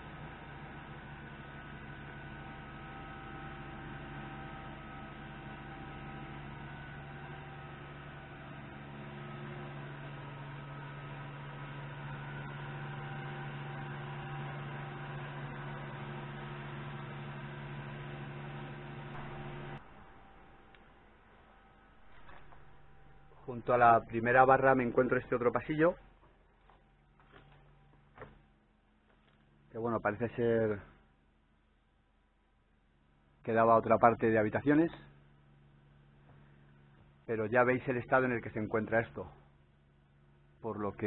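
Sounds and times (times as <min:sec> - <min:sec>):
steady hum of held tones: 0:00.0 - 0:41.0.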